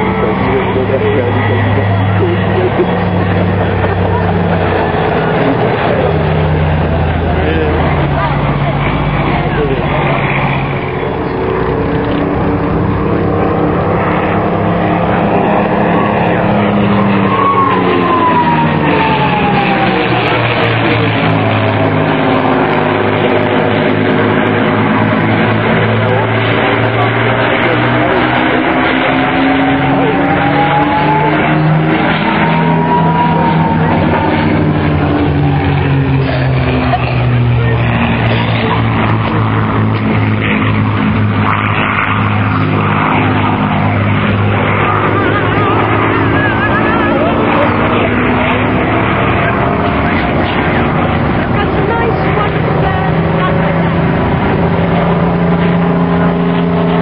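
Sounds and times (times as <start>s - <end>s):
propeller aircraft flying past: 0.0s - 57.0s.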